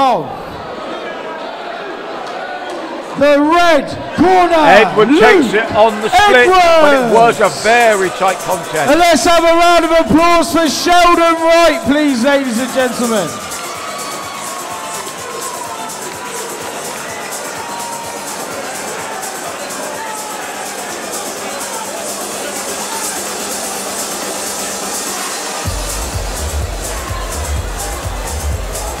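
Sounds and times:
crowd chatter: 0:00.0 - 0:29.0
crowd applause: 0:00.4 - 0:29.0
music playing: 0:03.2 - 0:29.0
heavy bass beat: 0:25.6 - 0:29.0.

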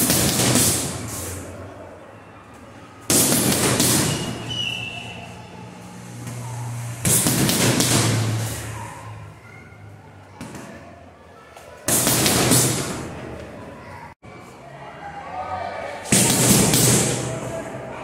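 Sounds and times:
gloves punching heavy bag: 0:00.0 - 0:01.0, 0:03.1 - 0:04.4, 0:07.0 - 0:08.4, 0:16.1 - 0:17.3.

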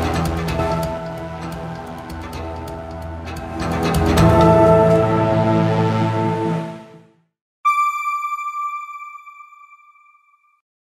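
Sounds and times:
background music: 0:00.0 - 0:09.8
bright electronic chime: 0:07.7 - 0:10.6.

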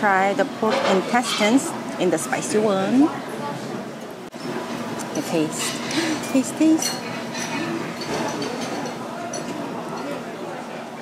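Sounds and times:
murmur of diners chatting: 0:00.0 - 0:11.0
tableware clinking: 0:00.7 - 0:01.8, 0:05.2 - 0:10.2.

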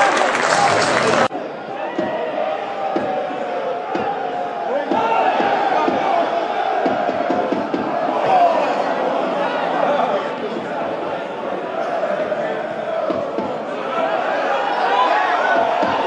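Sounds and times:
stadium crowd shouting and singing: 0:00.0 - 0:16.0.

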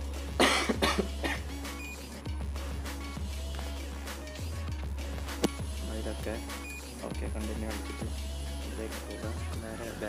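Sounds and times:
person coughing: 0:00.4 - 0:01.5.

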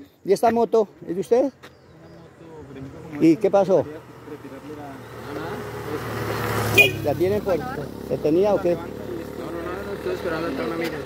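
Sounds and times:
vehicle engine approaching: 0:01.8 - 0:11.0.

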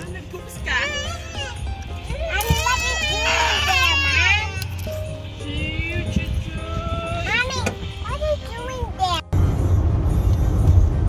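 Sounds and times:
toddler crying: 0:00.7 - 0:04.9.

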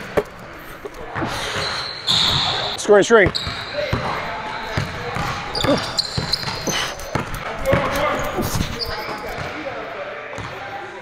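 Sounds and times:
court noise: 0:00.0 - 0:11.0
basketball bouncing on wooden floor: 0:03.2 - 0:08.7
thin high squeak: 0:08.1 - 0:09.3.

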